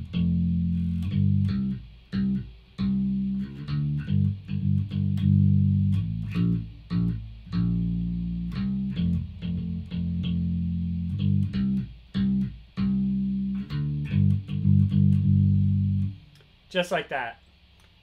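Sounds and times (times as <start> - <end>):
electric bass guitar notes: 0.0 - 17.0.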